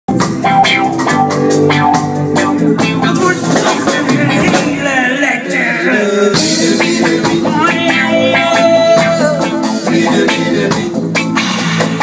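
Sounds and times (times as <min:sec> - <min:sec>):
live band playing instrumental: 0:00.1 - 0:12.0.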